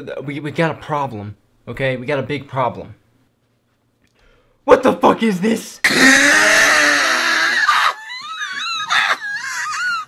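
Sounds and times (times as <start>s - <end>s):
young man wailing: 5.9s - 10.0s.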